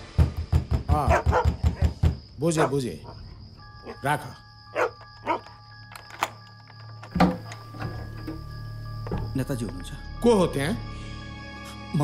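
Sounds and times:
dog barking: 0:01.0 - 0:01.9, 0:02.5 - 0:04.0, 0:04.7 - 0:05.5.

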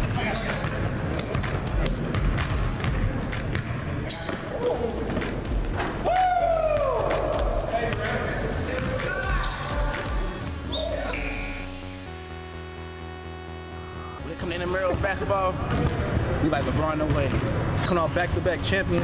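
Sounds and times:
sneakers squeaking: 0:00.0 - 0:06.0, 0:06.7 - 0:11.7, 0:14.8 - 0:19.0
players' voices: 0:02.7 - 0:11.7, 0:14.2 - 0:19.0
basketball bouncing: 0:14.9 - 0:19.0.

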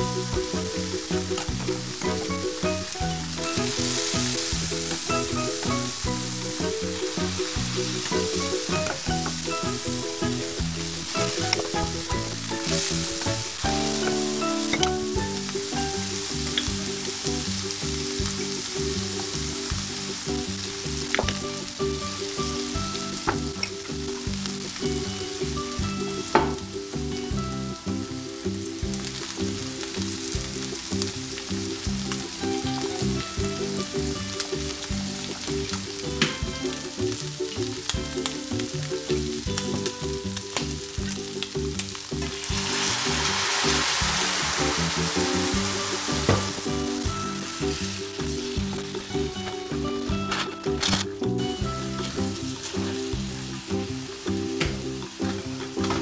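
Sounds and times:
food sizzling in a skillet: 0:00.0 - 0:50.8, 0:51.4 - 0:56.0.

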